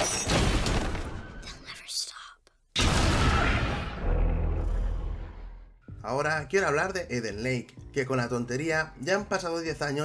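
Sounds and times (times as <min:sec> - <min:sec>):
faint whispered voice: 0:01.4 - 0:02.6.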